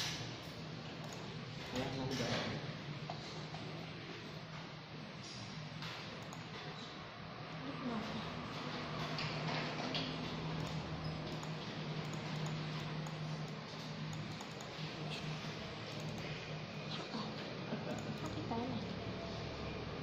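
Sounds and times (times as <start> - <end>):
steady low hum: 10.2 - 20.0.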